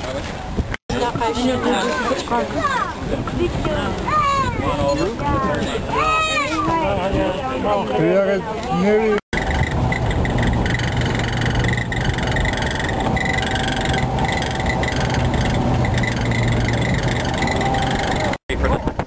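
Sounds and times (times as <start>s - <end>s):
road and wind noise: 0.0s - 19.0s
truck engine hum: 9.3s - 18.4s.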